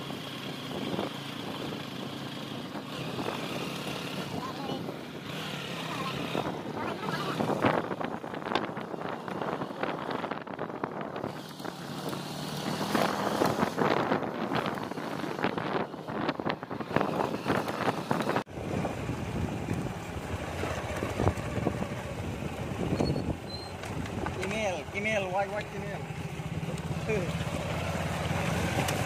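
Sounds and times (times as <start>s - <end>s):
motorcycle engine running: 0.0s - 29.0s
wind buffeting microphone: 0.6s - 27.0s.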